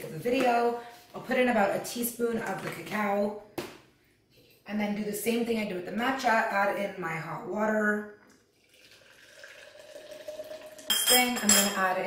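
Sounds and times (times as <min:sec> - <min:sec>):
hot water pouring into cup: 0:08.3 - 0:11.0.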